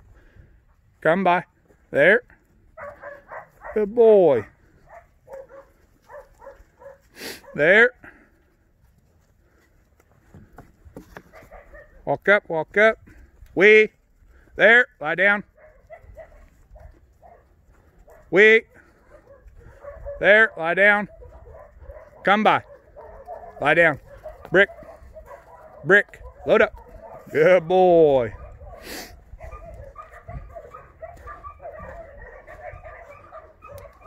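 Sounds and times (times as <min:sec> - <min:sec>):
hoof steps on frozen ground: 0:00.0 - 0:12.0, 0:12.7 - 0:34.0
wind rumble on microphone: 0:28.3 - 0:34.0.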